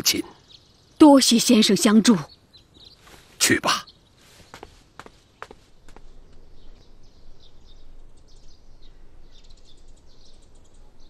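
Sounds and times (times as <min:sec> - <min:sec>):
light footsteps: 0:03.0 - 0:03.4, 0:04.2 - 0:06.5.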